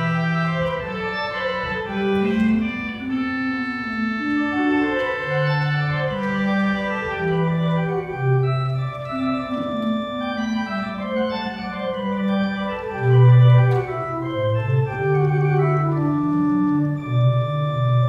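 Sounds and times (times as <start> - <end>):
pipe organ playing classical piece: 0.0 - 18.0.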